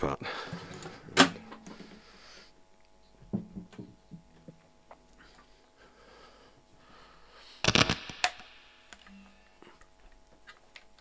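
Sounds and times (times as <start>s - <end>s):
guitar handling knocks: 3.3s - 4.6s
sharp click: 7.6s - 9.1s.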